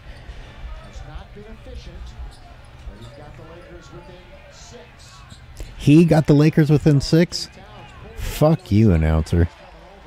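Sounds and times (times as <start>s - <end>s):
low arena crowd noise: 0.0s - 10.0s.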